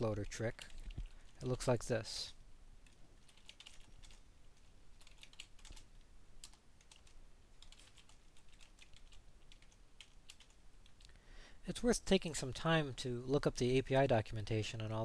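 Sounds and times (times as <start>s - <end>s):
typing on computer keyboard: 2.8s - 4.2s, 5.0s - 11.0s.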